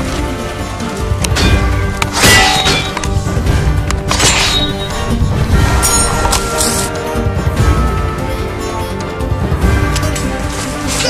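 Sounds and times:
background music: 0.0 - 11.0
swords clashing: 1.3 - 3.2, 4.0 - 5.0.

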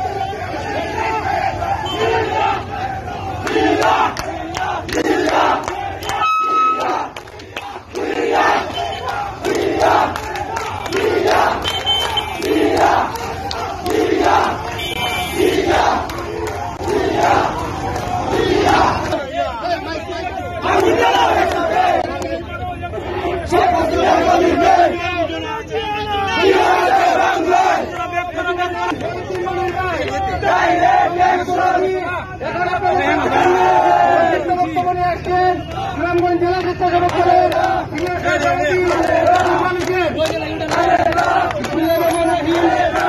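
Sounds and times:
crowd chanting slogans: 0.0 - 43.0.

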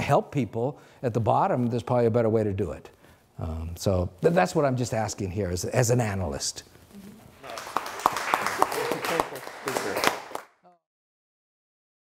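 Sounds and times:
audience applauding: 7.4 - 10.6.

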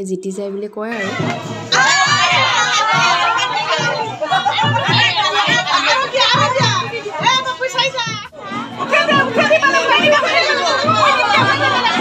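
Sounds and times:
voices talking and calling out: 0.8 - 12.0.

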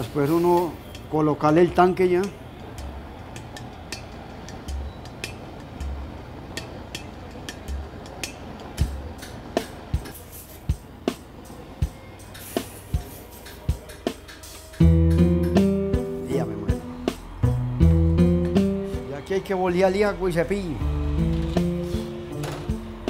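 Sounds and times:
guitar music: 14.8 - 19.3, 20.7 - 23.0.

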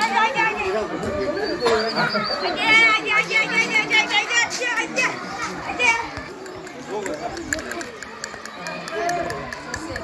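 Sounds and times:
children shouting at play: 0.0 - 10.0.

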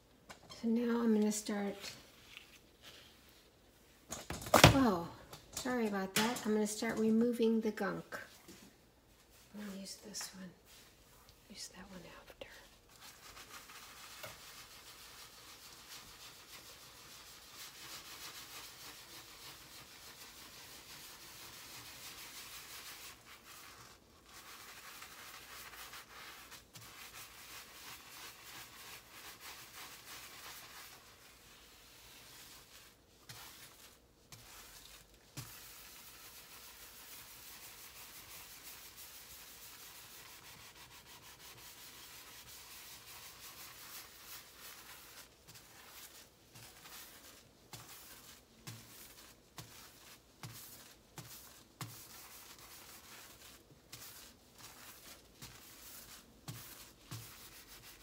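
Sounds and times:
sponge scrubbing stovetop: 9.2 - 58.0.

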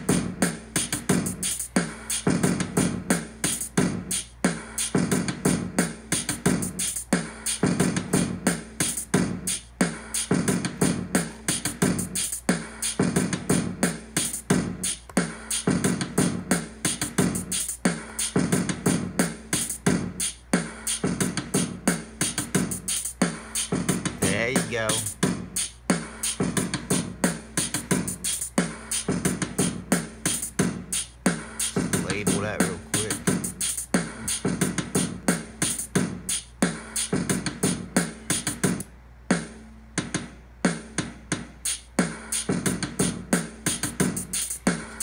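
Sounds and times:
hip-hop drum beat: 0.0 - 45.0.

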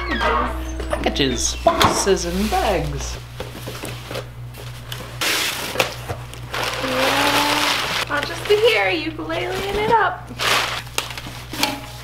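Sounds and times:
packing paper rustling: 2.0 - 12.0.

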